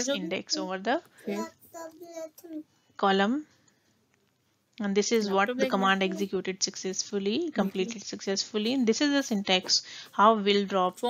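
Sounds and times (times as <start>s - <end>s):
person making hesitation sounds: 5.4s - 6.3s.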